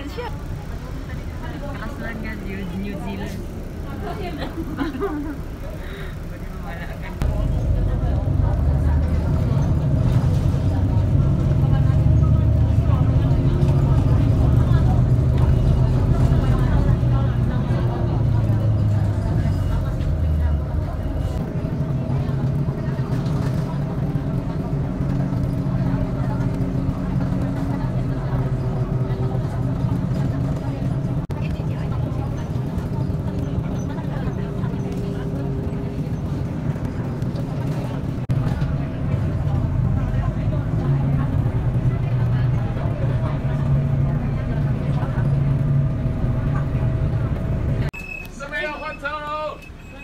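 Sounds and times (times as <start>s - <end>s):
bus engine and road rumble: 0.0s - 50.0s.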